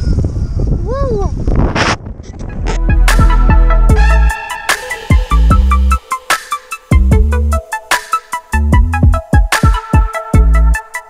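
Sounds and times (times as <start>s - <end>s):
wind buffeting microphone: 0.0s - 3.8s.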